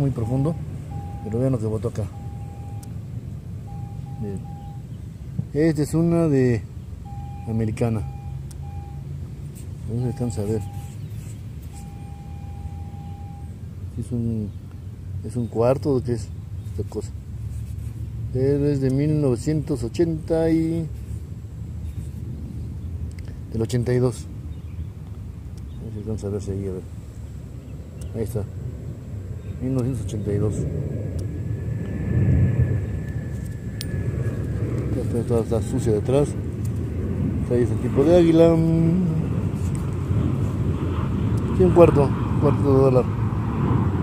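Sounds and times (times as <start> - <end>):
metal detector steady tone: 0.0 - 2.9, 3.7 - 4.8, 7.0 - 9.1, 9.8 - 13.6
faint high whine: 0.0 - 24.7, 25.3 - 43.1
distant engine rumble: 0.0 - 44.0
low rumble: 26.8 - 44.0.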